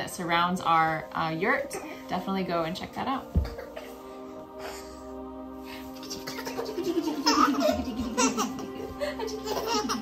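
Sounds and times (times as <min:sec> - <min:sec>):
background music: 0:00.0 - 0:10.0
laughter in quick pulses: 0:06.1 - 0:10.0.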